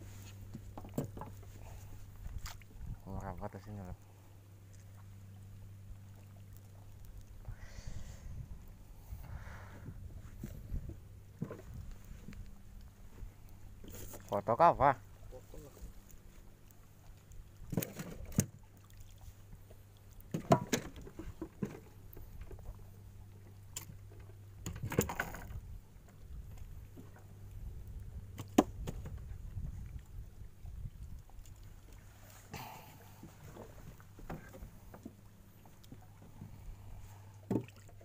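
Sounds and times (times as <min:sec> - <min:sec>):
faint low hum: 0:00.0 - 0:38.0
knocks on small boat: 0:20.3 - 0:21.8, 0:28.4 - 0:29.2, 0:37.4 - 0:37.8.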